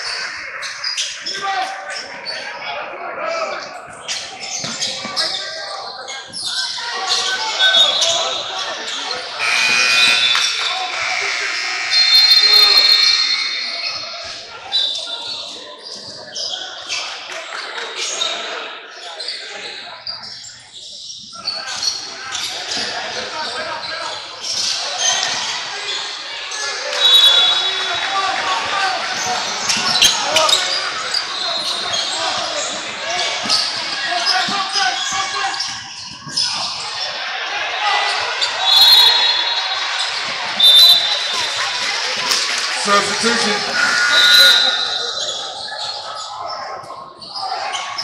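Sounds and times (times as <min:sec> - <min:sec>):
people talking: 0:00.0 - 0:48.0
sneaker squeaks: 0:04.0 - 0:17.0, 0:19.3 - 0:23.0, 0:29.1 - 0:37.1, 0:38.1 - 0:46.6.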